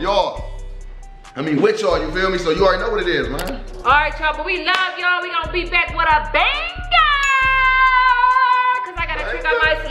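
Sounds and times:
background music with steady beat: 0.0s - 9.9s
woman's high-pitched shout: 6.4s - 9.1s.

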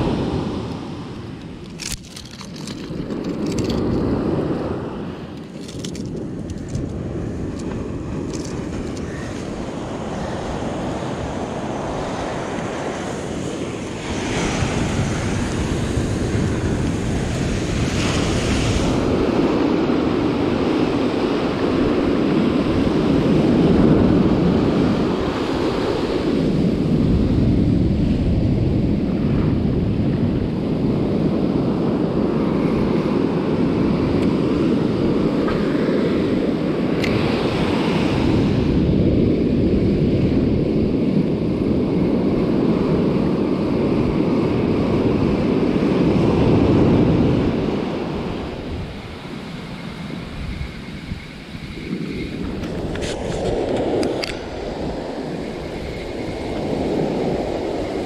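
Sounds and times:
wind buffeting microphone: 0.0s - 58.0s
surf breaking on beach: 6.2s - 50.3s.

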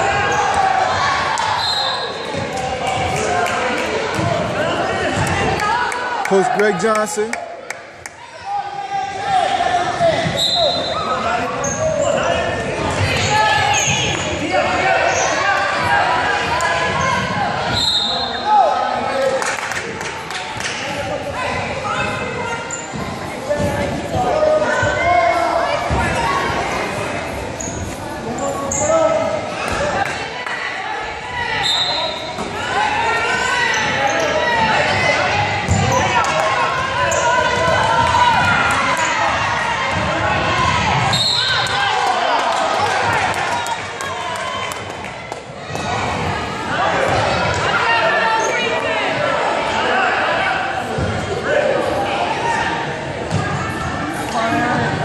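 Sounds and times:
echoing crowd voices: 0.0s - 55.0s.

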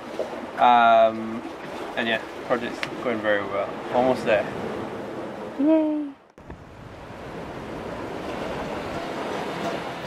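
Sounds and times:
waves washing: 0.0s - 10.0s
wind: 0.0s - 10.0s.

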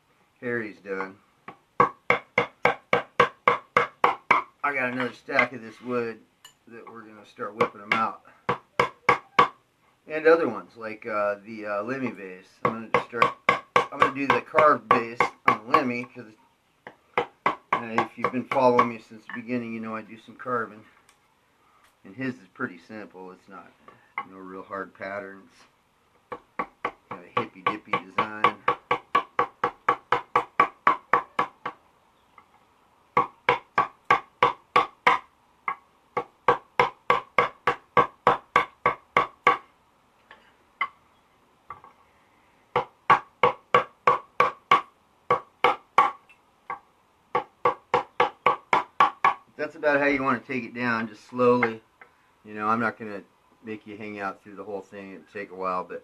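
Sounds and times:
mallet tapping wood chisel: 1.5s - 5.5s, 7.6s - 9.6s, 12.6s - 16.1s, 16.8s - 19.4s, 26.3s - 31.8s, 33.2s - 39.6s, 42.7s - 49.4s
mallet tapping a chisel into wood: 42.8s - 46.2s.

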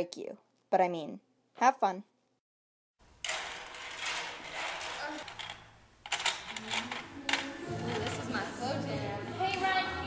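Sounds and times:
plastic puzzle pieces rattling: 3.2s - 8.3s.

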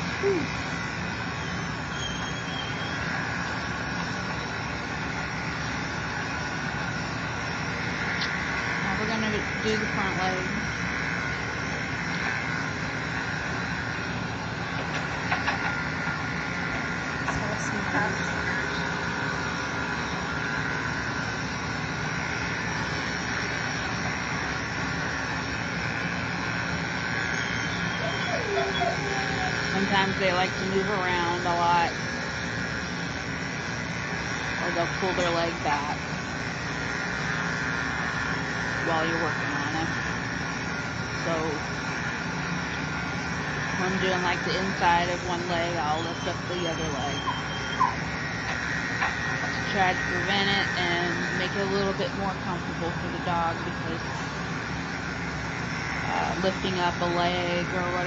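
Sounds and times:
electric clippers humming: 0.0s - 58.0s.

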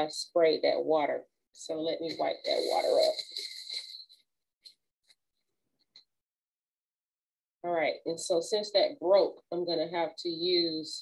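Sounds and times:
paper towel rubbing tabletop: 2.1s - 3.9s.

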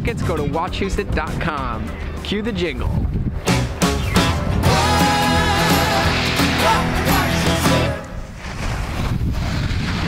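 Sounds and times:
wind buffeting microphone: 0.0s - 3.5s, 8.1s - 10.0s
music: 0.0s - 8.2s.

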